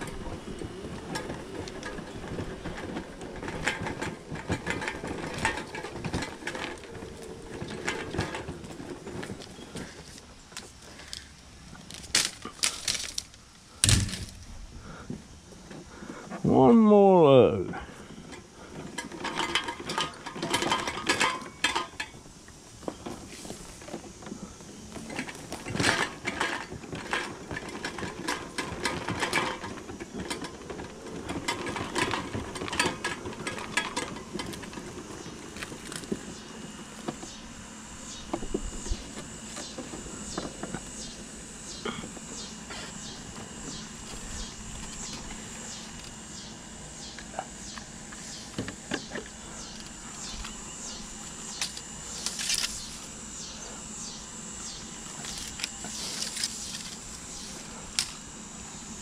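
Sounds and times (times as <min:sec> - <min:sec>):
high-pitched insect chirping: 0:37.2 - 0:57.8.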